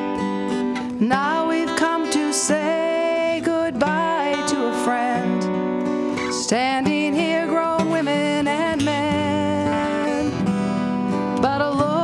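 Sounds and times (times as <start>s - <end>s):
acoustic guitar: 0.0s - 12.0s
woman singing: 0.8s - 12.0s.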